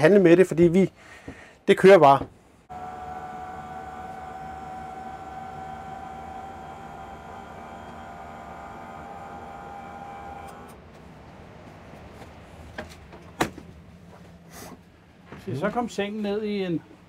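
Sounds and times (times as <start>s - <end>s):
electric motor whine: 2.7s - 10.8s.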